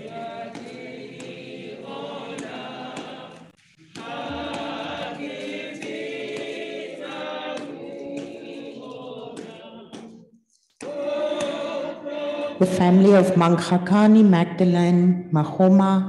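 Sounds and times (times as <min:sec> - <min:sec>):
group singing a hymn unaccompanied: 0:00.0 - 0:14.0.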